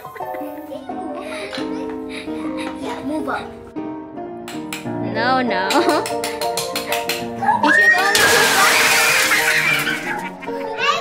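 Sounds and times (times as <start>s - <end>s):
children shrieking excitedly: 7.4s - 11.0s
plastic blocks shattering crash: 8.0s - 10.2s.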